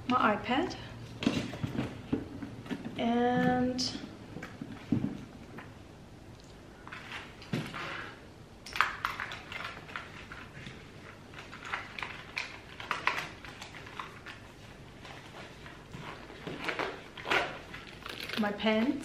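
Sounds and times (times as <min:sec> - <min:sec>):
small items clicking and knocking: 0:16.4 - 0:19.0.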